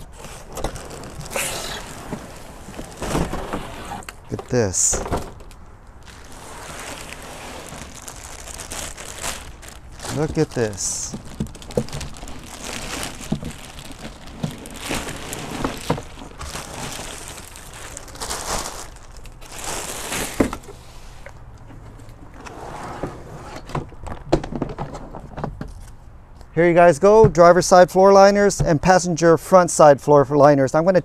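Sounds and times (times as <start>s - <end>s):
plastic bags crinkling: 0.1s - 3.7s, 5.4s - 20.6s.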